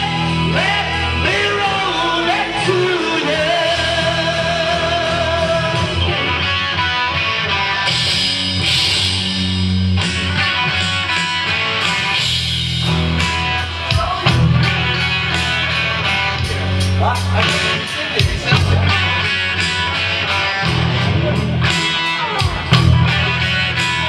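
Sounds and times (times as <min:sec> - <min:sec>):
electric guitar: 0:00.0 - 0:24.0
live rock band playing: 0:00.0 - 0:24.0.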